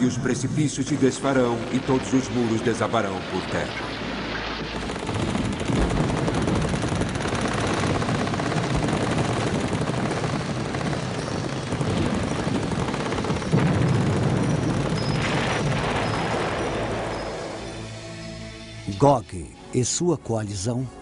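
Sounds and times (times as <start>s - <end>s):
rapid gunfire: 4.1s - 17.1s.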